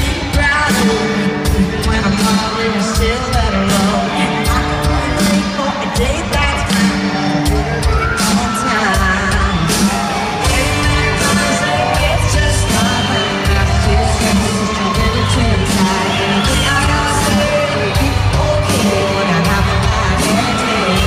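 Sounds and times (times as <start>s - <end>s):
live country-pop band: 0.0s - 21.0s
woman singing: 0.0s - 21.0s
crowd cheering and whooping: 0.2s - 21.0s.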